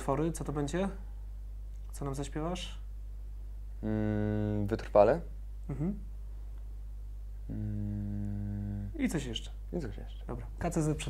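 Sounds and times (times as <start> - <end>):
man humming: 3.8 - 4.6, 5.7 - 6.1, 7.4 - 9.0.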